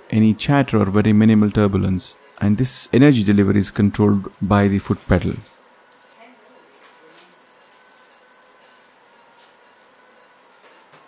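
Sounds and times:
machine clicking rapidly: 1.9 - 4.9, 5.9 - 6.3, 7.1 - 9.0, 9.8 - 10.4.

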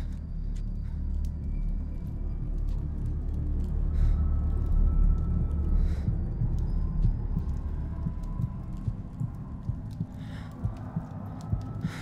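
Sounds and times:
low rumbling drone with throbbing: 0.0 - 12.0.

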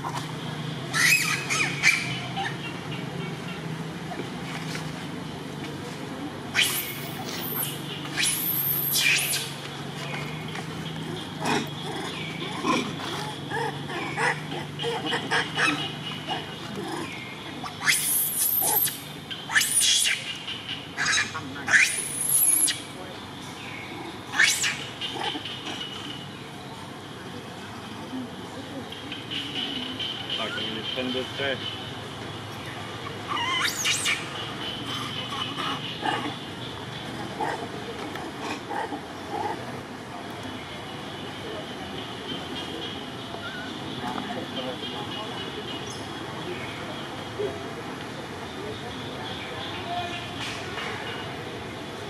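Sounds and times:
monkey screaming: 0.9 - 2.7, 6.5 - 9.6, 11.0 - 20.4, 21.0 - 22.9, 24.3 - 25.5, 32.9 - 36.5, 38.2 - 39.6
macaque squealing: 0.9 - 2.9, 6.5 - 9.6, 10.8 - 22.9, 23.9 - 26.0, 32.6 - 39.7
faint scattered sounds: 2.2 - 52.0.

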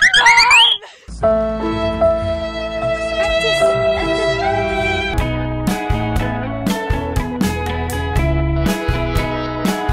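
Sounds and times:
music with long held chords: 1.1 - 9.9.

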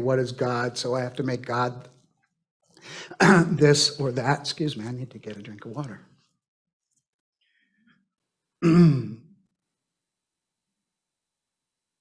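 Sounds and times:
man clearing his throat: 8.6 - 9.3.

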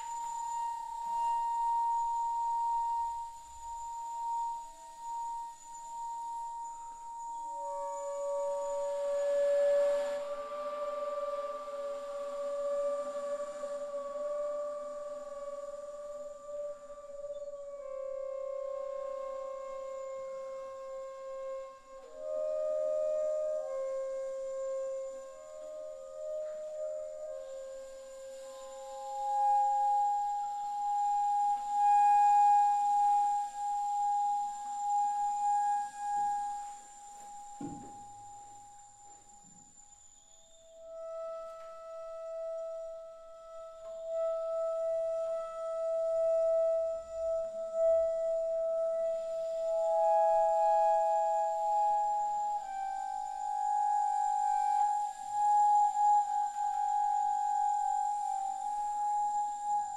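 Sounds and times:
bass flute held notes: 0.0 - 59.9.

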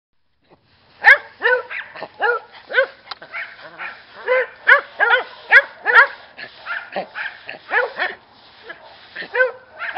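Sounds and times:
dogs barking: 1.0 - 9.9.

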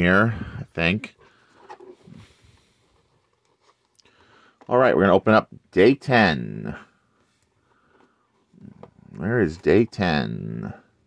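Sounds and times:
cardboard rustling: 1.0 - 4.7.

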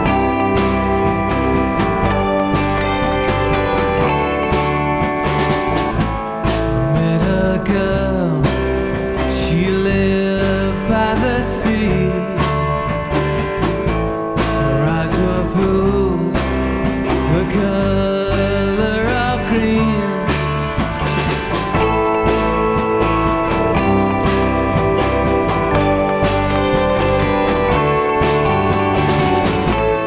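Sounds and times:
psychedelic rock song: 0.0 - 30.0.

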